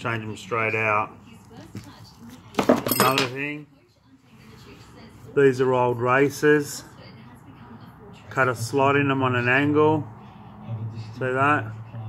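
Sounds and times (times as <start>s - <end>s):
hard objects clinking: 2.5s - 3.4s.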